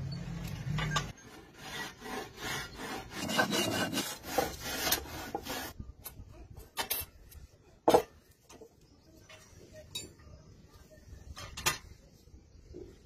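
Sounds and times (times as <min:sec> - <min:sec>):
iron bar scraping wood: 0:01.2 - 0:05.8.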